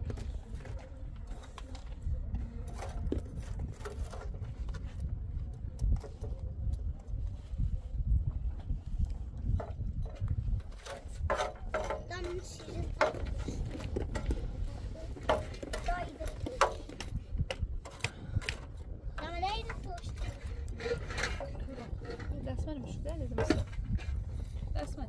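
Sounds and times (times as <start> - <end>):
metal spatula scraping pan: 20.2 - 22.5.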